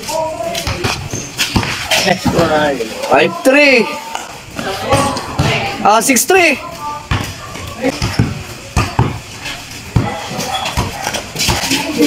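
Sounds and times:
sneakers on concrete: 0:00.0 - 0:05.9, 0:06.6 - 0:12.0
basketball bouncing: 0:04.6 - 0:05.7, 0:07.1 - 0:12.0.

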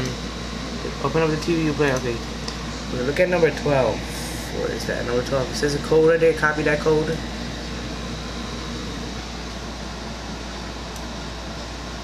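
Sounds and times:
air conditioner humming: 0:00.0 - 0:12.0.

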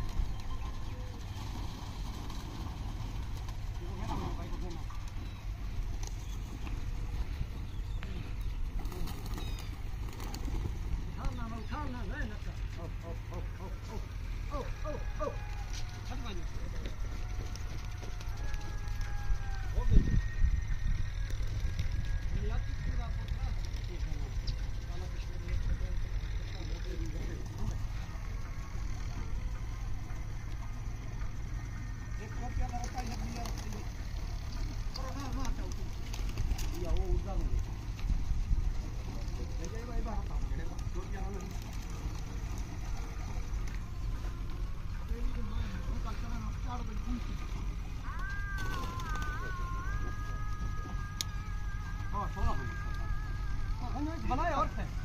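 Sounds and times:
distant voices calling out: 0:00.0 - 0:55.0.

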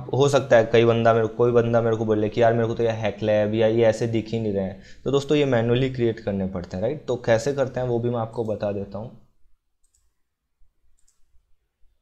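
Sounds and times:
faint computer mouse clicks: 0:09.8 - 0:10.2, 0:10.9 - 0:11.3.

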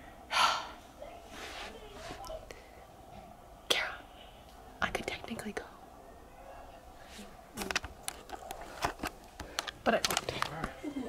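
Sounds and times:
breathy exhale: 0:00.2 - 0:00.8.

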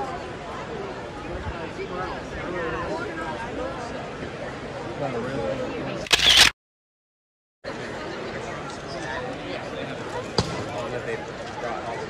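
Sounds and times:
crowd chatter: 0:00.0 - 0:06.5, 0:07.6 - 0:12.0
camera shutter click: 0:06.0 - 0:06.6.

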